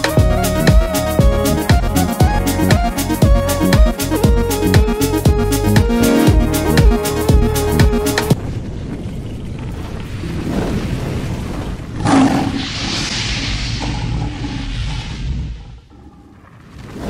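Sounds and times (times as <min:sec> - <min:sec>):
low rumble: 0:08.3 - 0:16.9
boom: 0:11.9 - 0:15.9
rushing hiss: 0:12.1 - 0:15.9.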